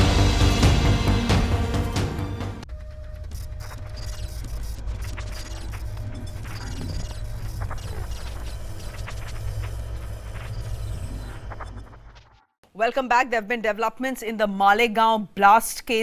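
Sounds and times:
mechanical clicking and ticking: 3.2 - 12.1.

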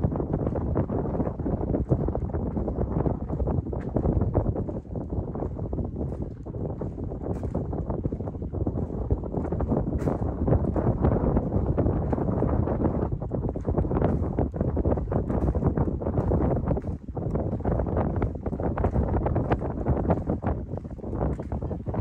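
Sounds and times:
wind noise on microphone: 0.0 - 22.0
footsteps on wooden planks: 0.3 - 22.0.

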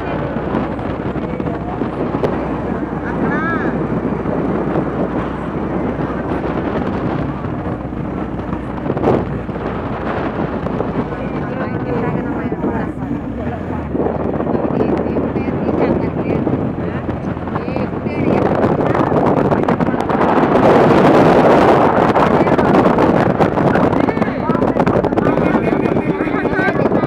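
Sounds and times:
indistinct voices: 0.0 - 27.0
vehicle engine hum: 0.0 - 27.0
wind buffeting microphone: 0.0 - 27.0.

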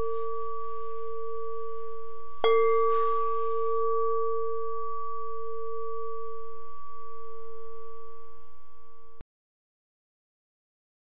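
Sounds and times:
singing bowl ringing: 0.0 - 9.2.

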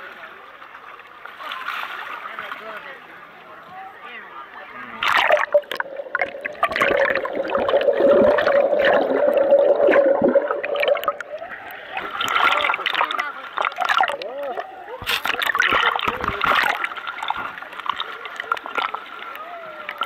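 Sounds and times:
water sloshing and gurgling: 4.8 - 20.0.

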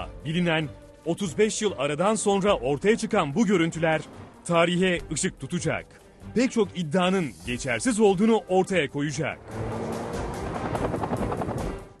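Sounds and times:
helicopter rotors beating: 9.4 - 12.0.

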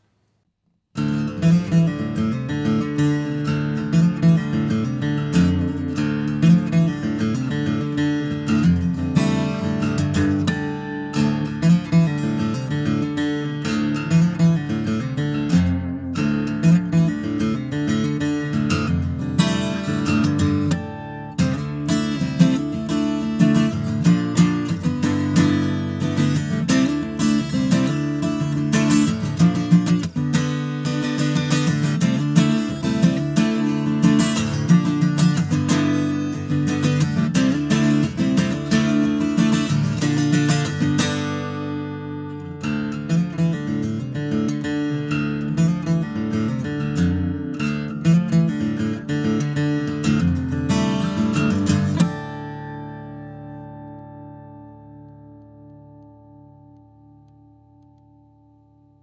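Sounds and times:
acoustic guitar playing: 1.0 - 59.0.

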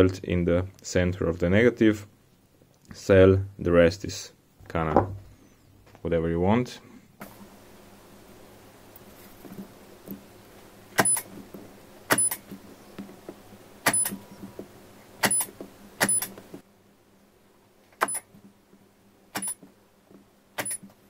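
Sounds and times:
spot welder snapping: 11.0 - 11.3, 12.1 - 12.6, 13.8 - 14.2, 15.2 - 16.5, 19.3 - 19.6, 20.6 - 21.0.

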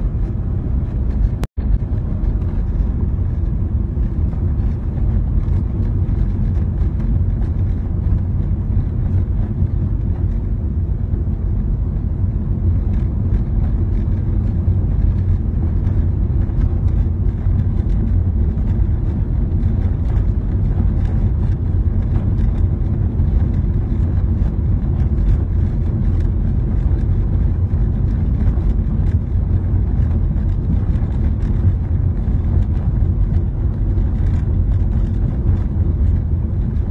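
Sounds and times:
car engine and tyre rumble: 0.0 - 36.9.

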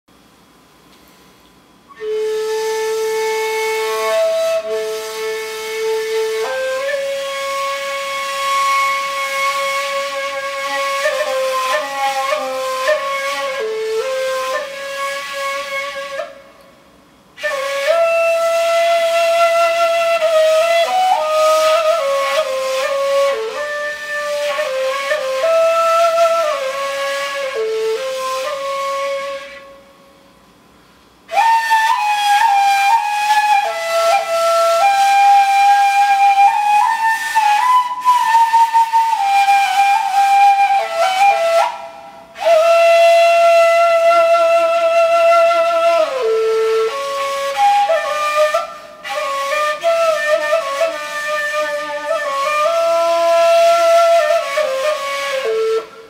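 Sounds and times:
breathy ney flute note: 1.1 - 16.6, 30.9 - 56.0.

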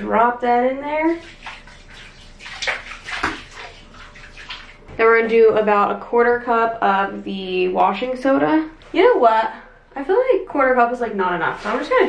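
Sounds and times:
small splashes: 1.0 - 5.3.

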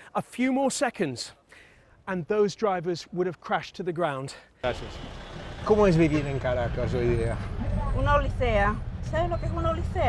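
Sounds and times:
bus engine running: 4.7 - 10.0
people talking: 5.7 - 10.0.

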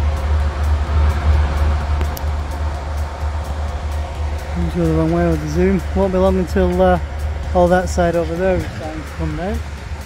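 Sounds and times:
crusher heavy low drone: 0.0 - 10.0
light regular ticking: 0.0 - 10.0.

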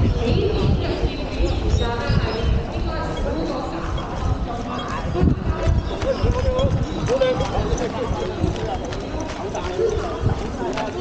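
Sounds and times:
indistinct voices: 0.0 - 11.0
running footfalls on road: 4.2 - 11.0.

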